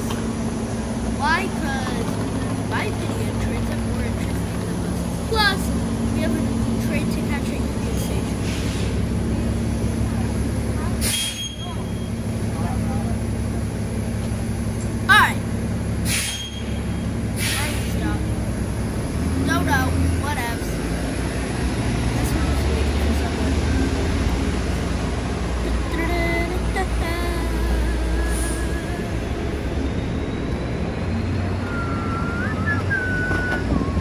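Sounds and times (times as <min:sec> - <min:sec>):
passersby voices: 0:00.0 - 0:16.1, 0:16.7 - 0:34.0
air brakes hissing: 0:08.3 - 0:09.1, 0:11.0 - 0:11.9, 0:16.0 - 0:18.1, 0:28.2 - 0:29.0
low mechanical hum: 0:25.3 - 0:30.7.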